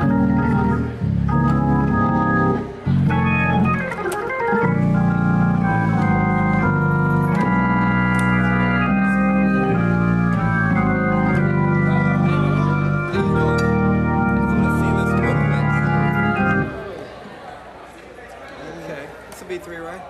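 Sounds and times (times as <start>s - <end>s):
organ playing gospel chords: 0.0s - 17.4s.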